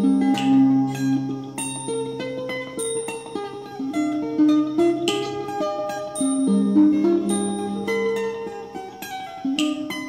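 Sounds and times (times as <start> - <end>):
mandolin picking melody: 0.0 - 10.0.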